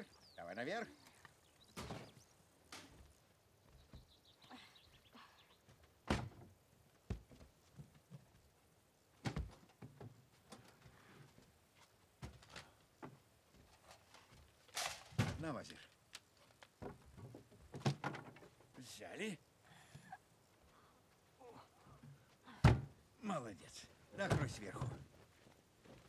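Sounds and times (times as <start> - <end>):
boxes thudding on wooden truck bed: 1.8 - 2.2, 6.0 - 6.5, 16.8 - 18.5, 22.6 - 23.0.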